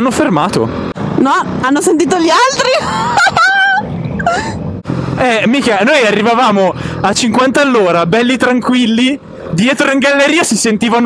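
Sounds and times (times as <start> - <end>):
motorcycle riding hum: 0.0 - 11.0.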